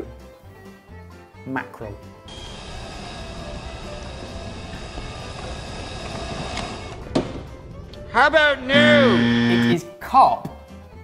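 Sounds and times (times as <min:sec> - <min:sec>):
food chopper motor running: 0:02.3 - 0:07.0.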